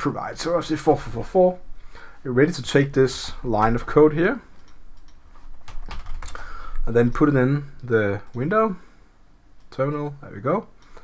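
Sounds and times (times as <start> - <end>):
computer keyboard keys clicking: 4.6 - 6.4.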